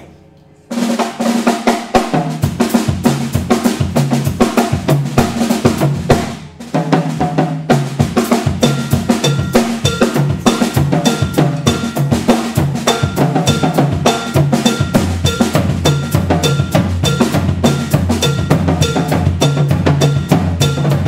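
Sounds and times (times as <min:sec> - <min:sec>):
jazz fusion band playing: 0:00.7 - 0:21.0
high bell-like strike: 0:08.7 - 0:12.4.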